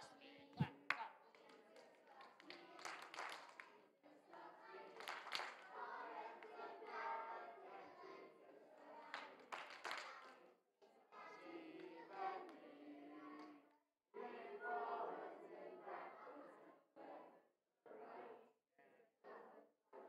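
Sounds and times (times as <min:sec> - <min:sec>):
hand claps: 0:00.6 - 0:03.7, 0:05.0 - 0:05.7, 0:09.1 - 0:10.4
distant group singing: 0:14.2 - 0:18.4.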